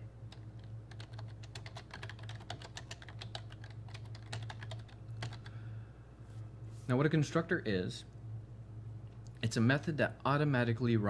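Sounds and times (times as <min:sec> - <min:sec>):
steady low hum: 0:00.0 - 0:11.0
computer keyboard typing: 0:00.3 - 0:05.5.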